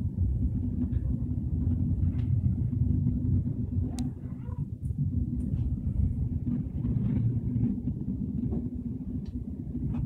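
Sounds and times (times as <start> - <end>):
train rumbling at speed: 0.0 - 10.0.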